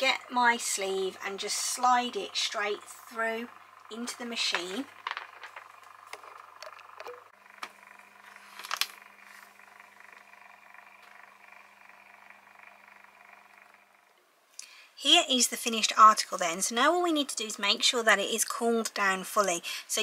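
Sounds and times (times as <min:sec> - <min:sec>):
motor whir with low hum: 0:00.0 - 0:19.7.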